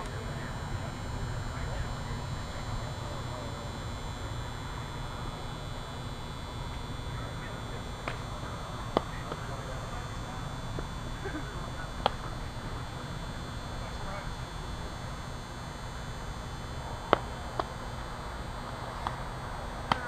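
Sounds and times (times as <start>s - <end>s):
faint distant voices: 0.0s - 20.0s.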